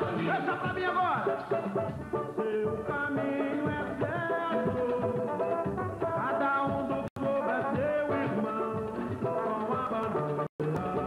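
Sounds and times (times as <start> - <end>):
samba jingle with singing: 0.0 - 11.0.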